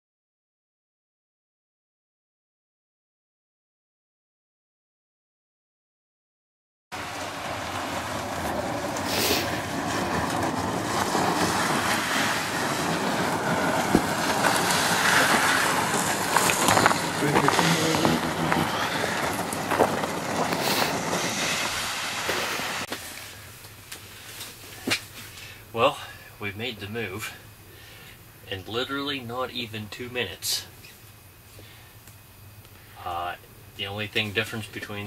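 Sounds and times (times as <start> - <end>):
plastic sled scraping on ice: 7.3 - 23.0.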